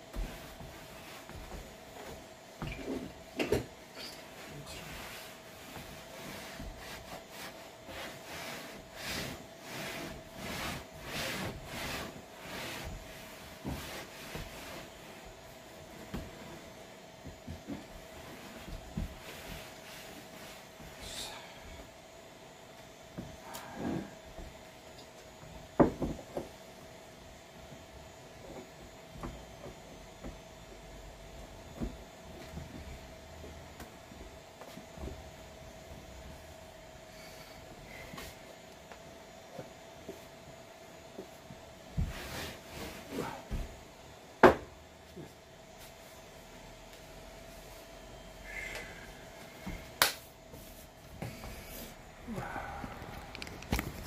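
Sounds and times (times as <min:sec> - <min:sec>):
faint steady hum: 0:00.0 - 0:54.0.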